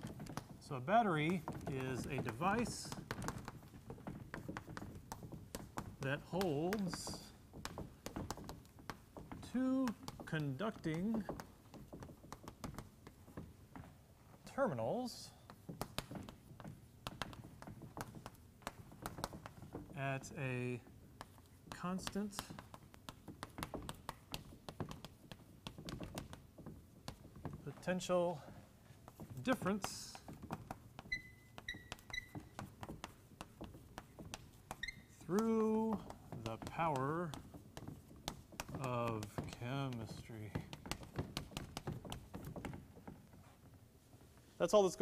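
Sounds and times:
chalk tapping and scratching on blackboard: 0.0s - 45.0s.

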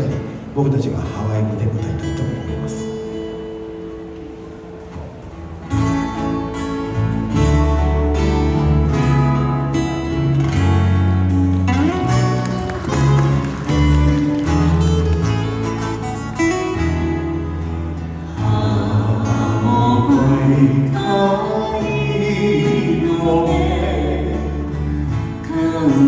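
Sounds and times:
acoustic guitars strumming: 0.0s - 26.0s
bass guitar: 2.0s - 26.0s.

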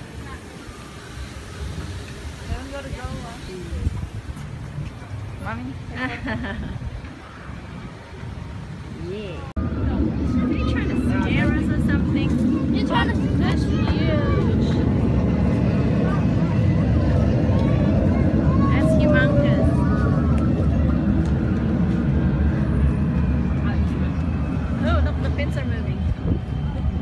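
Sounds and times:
wind buffeting microphone: 1.6s - 27.0s
faint voices talking: 6.8s - 27.0s.

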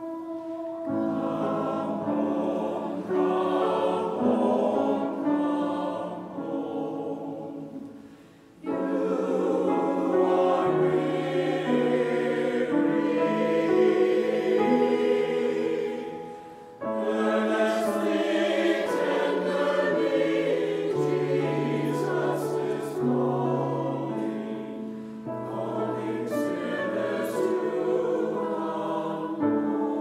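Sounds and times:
mixed choir singing: 0.0s - 30.0s.

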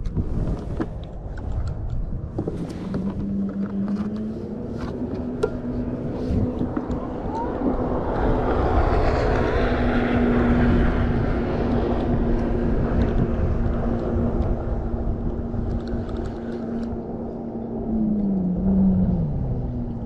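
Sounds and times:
motor engine drone: 0.0s - 20.0s.

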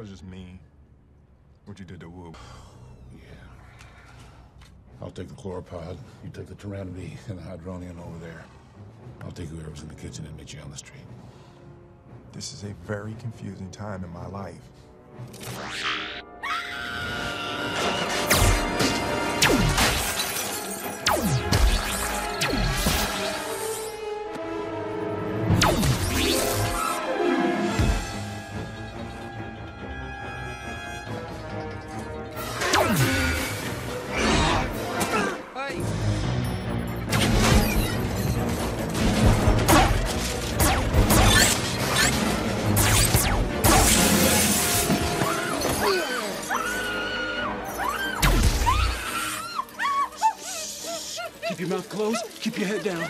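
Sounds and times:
loud background music: 17.1s - 49.3s
glass shattering: 18.1s - 23.4s
blaster shots with falling zaps: 39.0s - 44.7s.

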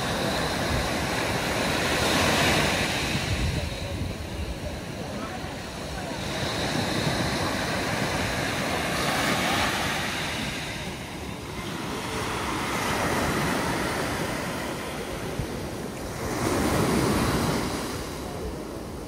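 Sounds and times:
waves breaking on pebble beach: 0.0s - 19.0s.

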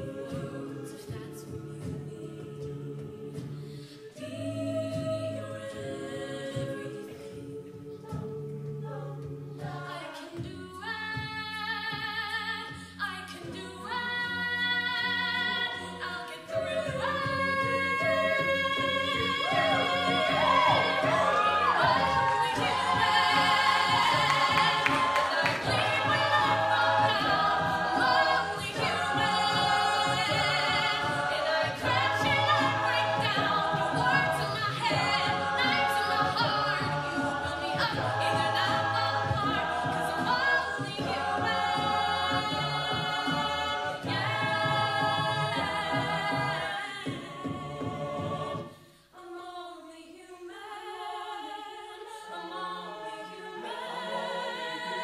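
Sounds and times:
a cappella group singing: 0.0s - 55.0s
vocal percussion: 0.0s - 55.0s
female soloist singing: 13.4s - 48.0s.

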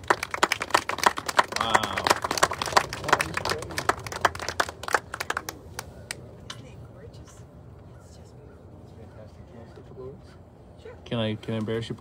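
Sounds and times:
crowd clapping: 0.0s - 6.2s.

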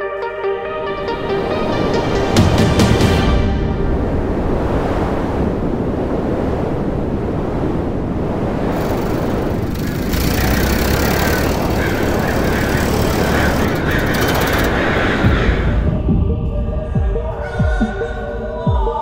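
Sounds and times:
wind buffeting microphone: 3.7s - 17.4s.

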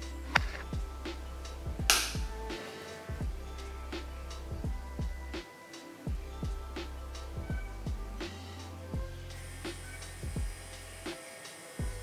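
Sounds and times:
background music with kick drums: 0.0s - 12.0s.

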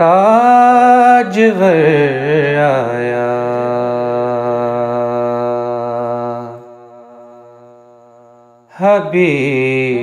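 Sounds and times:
wordless vocal humming: 0.0s - 10.0s.

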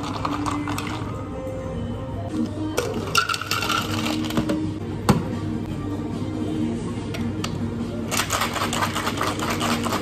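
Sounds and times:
background music: 0.0s - 10.0s
ice cubes clinking: 3.1s - 4.4s, 8.1s - 10.0s.

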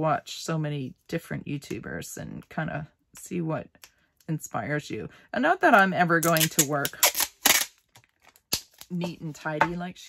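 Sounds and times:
packing tape pulled and torn: 6.2s - 8.9s.

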